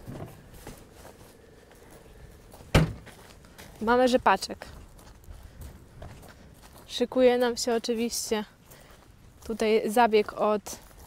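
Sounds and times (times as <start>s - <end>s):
faint outdoor background: 0.0s - 11.0s
car door shutting: 2.7s - 3.1s.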